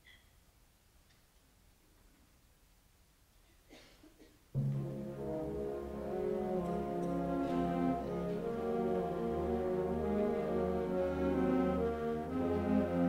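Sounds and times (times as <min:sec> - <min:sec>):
faint small noises: 0:00.0 - 0:05.2.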